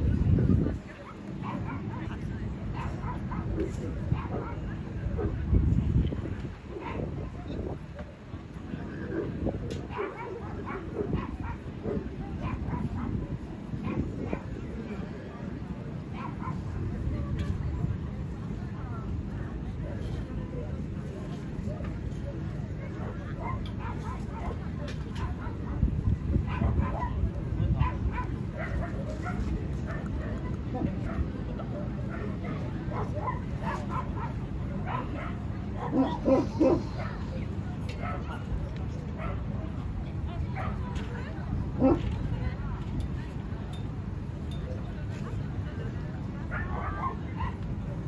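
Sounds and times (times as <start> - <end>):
murmur of voices: 0.0 - 48.0
dogs yipping and barking: 32.9 - 37.2
dog yapping: 35.8 - 36.9.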